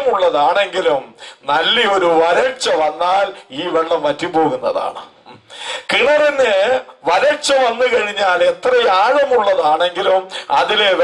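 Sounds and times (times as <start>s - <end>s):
man's voice through microphone: 0.0s - 11.0s.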